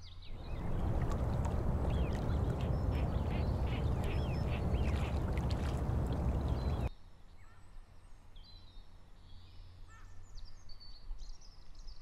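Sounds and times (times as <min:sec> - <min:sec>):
low outdoor rumble: 0:00.3 - 0:06.9
ducks quacking: 0:00.4 - 0:06.9.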